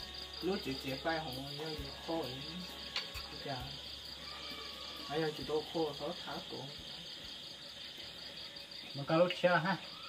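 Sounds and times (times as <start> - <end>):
crickets chirping: 0.0 - 10.0.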